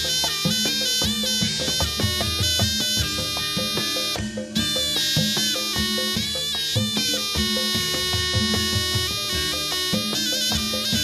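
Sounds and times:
shrill reed pipe melody: 0.0 - 11.0.

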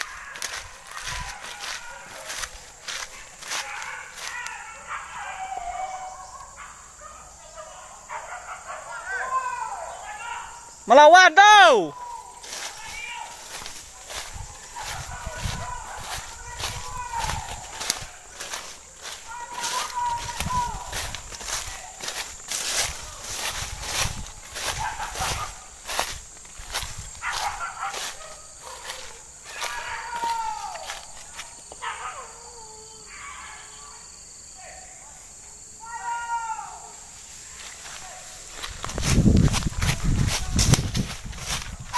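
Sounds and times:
footsteps through undergrowth: 0.0 - 6.6, 10.8 - 32.0, 37.0 - 41.9
faint falling calls: 11.9 - 23.6.

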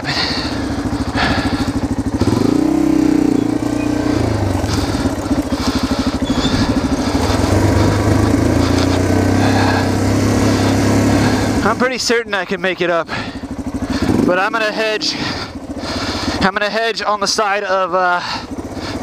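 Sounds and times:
motorcycle engine running at low revs: 0.0 - 19.0.

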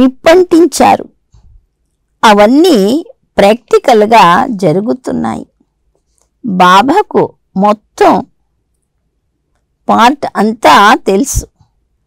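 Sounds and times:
woman reading aloud: 0.0 - 1.1, 2.2 - 5.5, 6.4 - 8.3, 9.8 - 11.5.

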